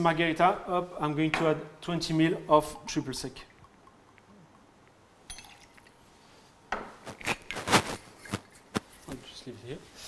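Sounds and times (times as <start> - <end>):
metal shaker tins clinking: 5.3 - 6.0.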